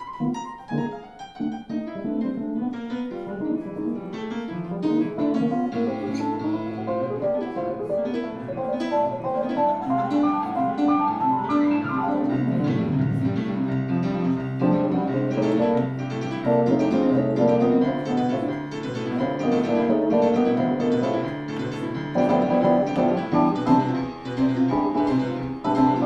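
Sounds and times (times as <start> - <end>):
grand piano: 0.0 - 26.0
electronic keyboards: 4.8 - 26.0.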